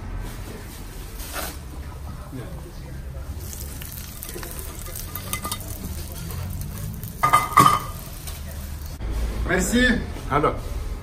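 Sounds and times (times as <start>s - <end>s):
hot oil sizzling: 2.3s - 9.0s
nuts clicking against pan: 3.4s - 8.5s.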